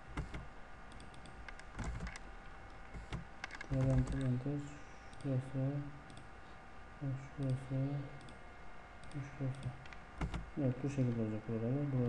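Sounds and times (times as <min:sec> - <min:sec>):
computer mouse clicks: 0:00.2 - 0:02.2, 0:02.9 - 0:04.4, 0:06.1 - 0:06.3, 0:08.2 - 0:08.4, 0:09.0 - 0:10.5
man murmuring: 0:07.0 - 0:08.2.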